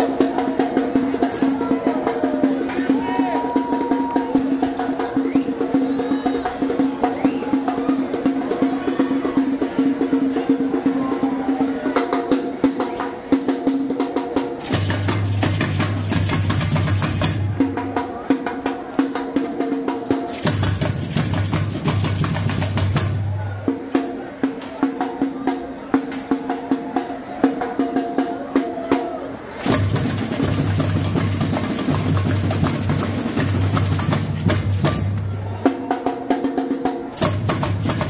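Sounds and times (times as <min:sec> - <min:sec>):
samba drums rolling: 0:00.0 - 0:38.0.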